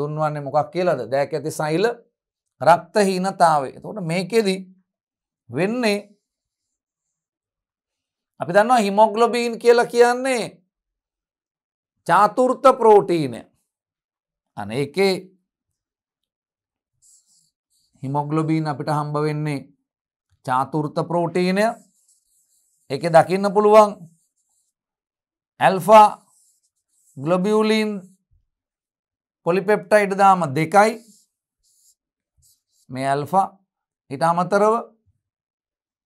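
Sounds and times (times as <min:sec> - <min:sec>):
stylus scratching on screen: 0:16.8 - 0:19.6, 0:20.5 - 0:25.0, 0:25.6 - 0:28.4, 0:29.5 - 0:33.3
man speaking: 0:18.0 - 0:19.6, 0:20.5 - 0:21.8, 0:22.9 - 0:24.1, 0:25.6 - 0:26.3, 0:27.2 - 0:28.1, 0:29.5 - 0:31.1, 0:32.9 - 0:33.5.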